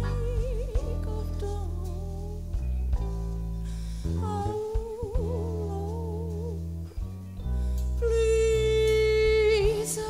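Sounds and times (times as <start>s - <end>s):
slow blues band music: 0.0s - 10.0s.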